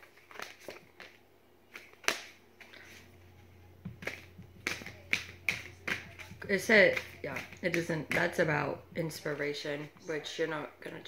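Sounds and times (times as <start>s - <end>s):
cards being shuffled: 0.0s - 3.2s, 3.8s - 10.0s.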